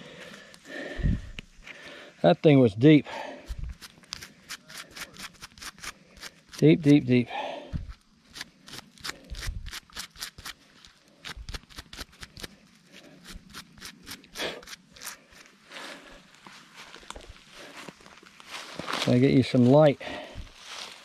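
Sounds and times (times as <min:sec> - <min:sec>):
rustling leaves and soil: 0:00.0 - 0:21.0.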